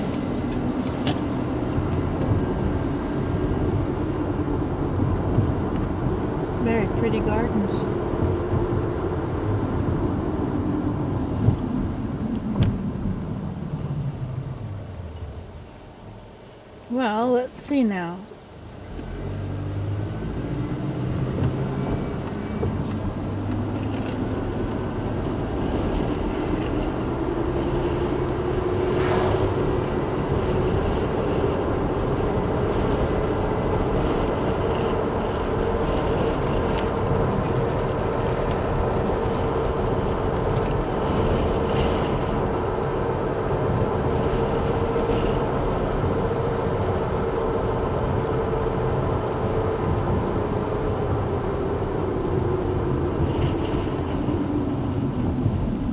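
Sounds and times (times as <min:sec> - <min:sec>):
car engine: 0:00.0 - 0:17.4, 0:18.0 - 0:55.9
road noise inside car: 0:00.0 - 0:55.9.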